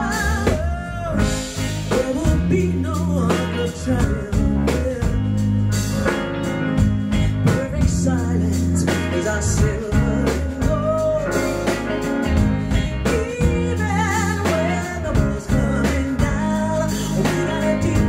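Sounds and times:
woman singing: 0.0s - 5.4s, 7.2s - 11.9s, 12.7s - 18.0s
live band playing: 0.0s - 18.0s.

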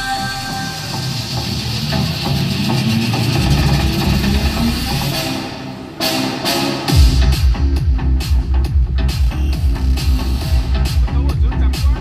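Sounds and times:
hissing rumbling wash of sound: 0.0s - 6.4s
stage music over a pa: 0.0s - 12.0s.

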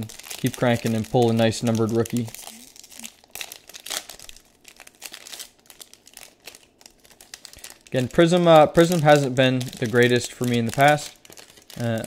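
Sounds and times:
trading card packs crinkling: 0.0s - 12.0s.

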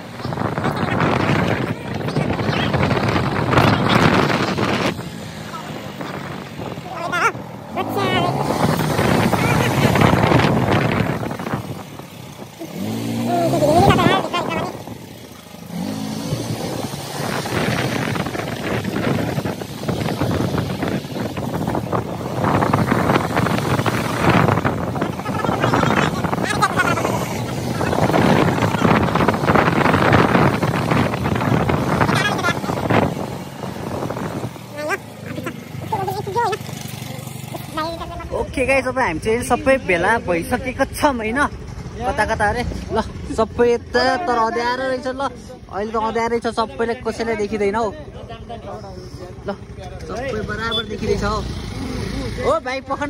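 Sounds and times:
motorbike engine revving: 0.0s - 44.9s, 49.4s - 52.7s.

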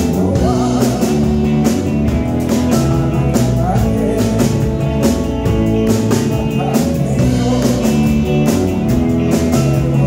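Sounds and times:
electric guitars: 0.0s - 10.0s
keyboard: 0.0s - 10.0s
live rock band: 0.0s - 10.0s.

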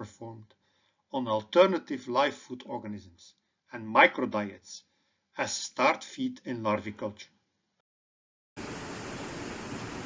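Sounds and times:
steady even hiss: 8.6s - 10.0s.

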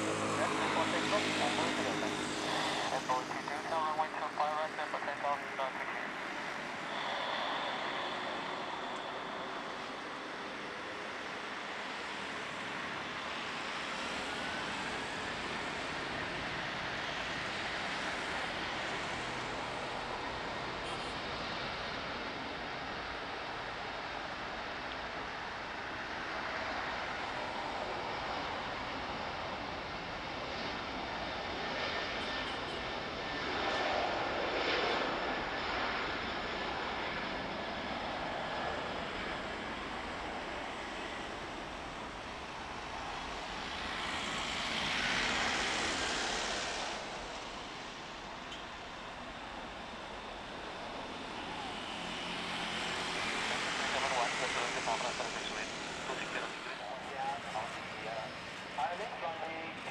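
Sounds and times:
jet engines at takeoff: 0.0s - 59.9s.

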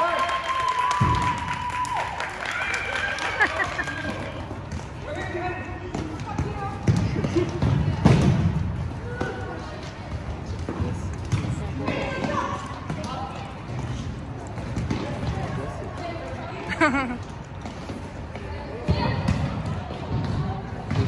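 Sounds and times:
ball bouncing on gym floor: 4.5s - 21.0s.

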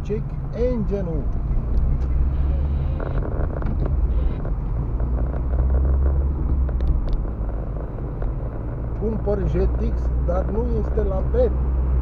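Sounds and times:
car engine drone inside cabin: 0.0s - 12.0s.

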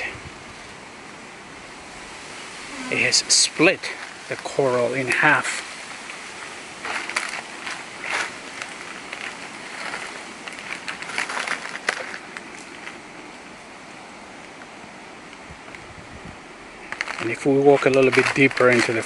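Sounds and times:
steady outdoor hiss: 0.0s - 19.0s
footsteps crunching on dry leaves: 1.9s - 13.9s, 16.8s - 19.0s.

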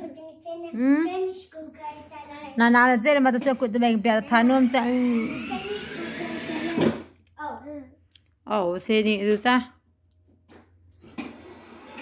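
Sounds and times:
toy car motor whirring: 4.2s - 7.2s, 11.0s - 12.0s.

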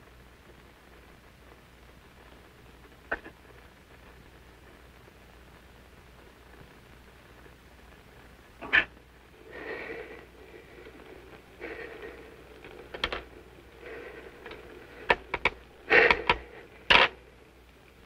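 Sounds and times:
man breathing hard: 9.4s - 12.6s, 13.7s - 16.8s
sharp clicks and knocks: 12.6s - 13.3s, 14.4s - 17.2s.

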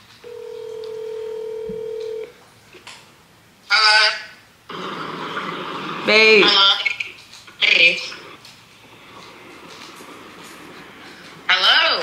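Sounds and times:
open phone line hiss: 0.2s - 2.3s
phone ringback tone: 0.2s - 2.3s.

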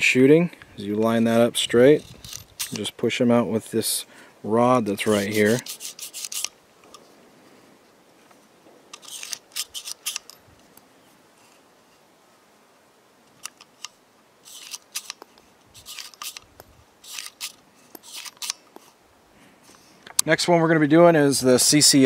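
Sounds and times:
revolver metallic clicks and rattles: 2.0s - 3.0s, 8.9s - 10.4s, 13.3s - 18.6s.

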